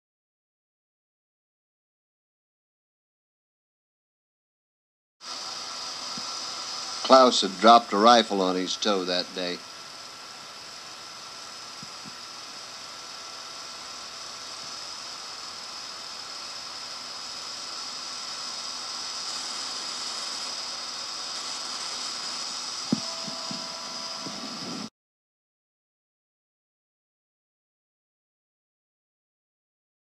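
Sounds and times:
small machine running: 5.2s - 24.9s
tape hiss: 5.2s - 24.9s.

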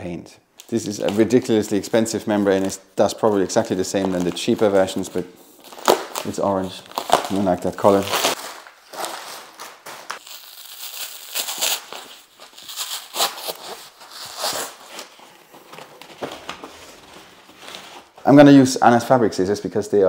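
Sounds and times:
plastic wrapping crinkling: 0.6s - 18.3s.

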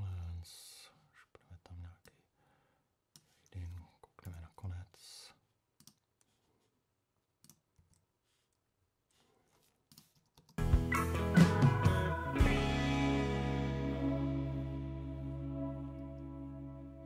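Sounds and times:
computer mouse clicks: 5.8s - 6.3s, 7.4s - 8.1s, 9.6s - 10.6s.

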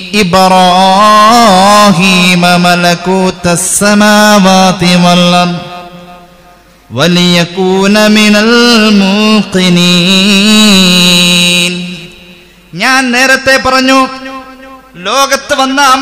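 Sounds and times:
man chanting melodically: 0.0s - 16.0s.

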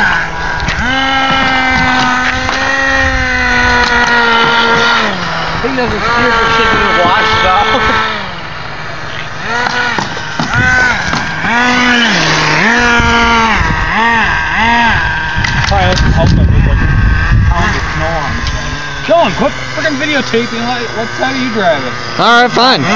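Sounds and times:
nitro engine revving: 0.0s - 22.9s.

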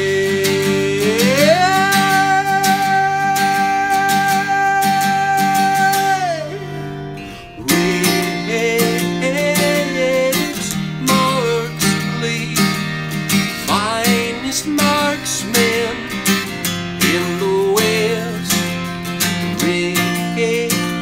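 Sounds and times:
acoustic guitar strumming: 0.0s - 21.0s
man singing: 0.0s - 21.0s.

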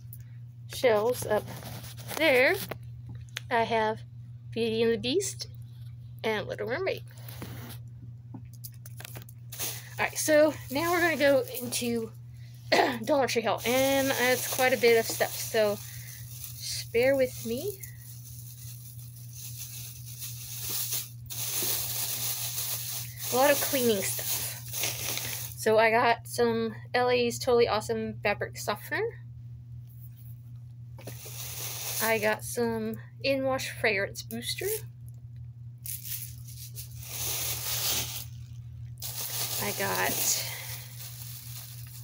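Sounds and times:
steady low hum: 0.0s - 42.0s
plastic bag rustling: 0.9s - 2.8s, 9.0s - 12.1s, 13.0s - 25.6s, 31.0s - 32.4s, 35.9s - 42.0s.

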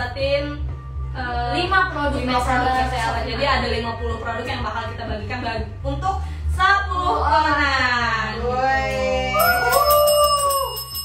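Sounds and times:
background music with ticking beat: 0.0s - 11.0s.

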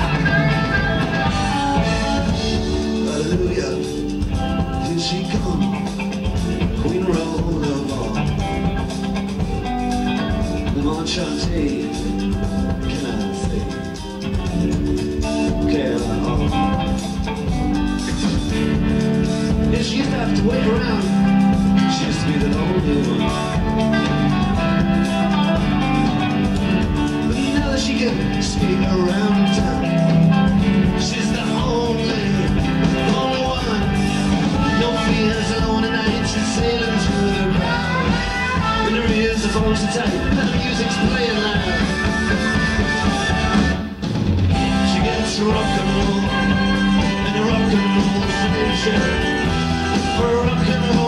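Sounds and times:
electric guitar lines: 0.0s - 51.0s
rock band playing instrumental: 0.0s - 51.0s
steady drum beat: 0.0s - 51.0s.

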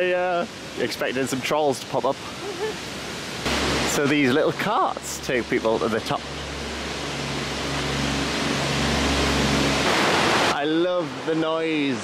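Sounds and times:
rushing river water: 0.0s - 12.0s
engine humming: 2.4s - 11.3s.

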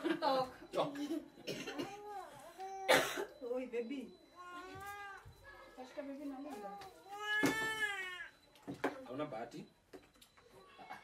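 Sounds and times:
high-pitched meow-like cry: 7.1s - 8.4s.

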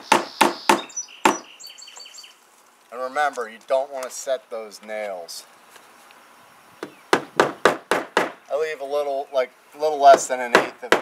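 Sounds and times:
hammer striking nail: 7.1s - 8.4s.

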